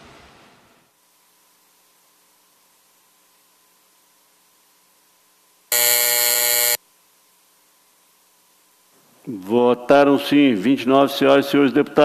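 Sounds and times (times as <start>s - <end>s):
electric buzzer: 5.7s - 6.8s.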